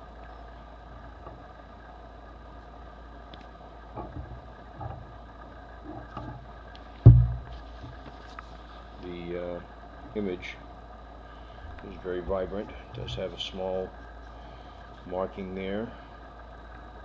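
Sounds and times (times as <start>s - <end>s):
steady low hum: 0.0s - 17.0s
loud dull thump: 7.0s - 7.6s.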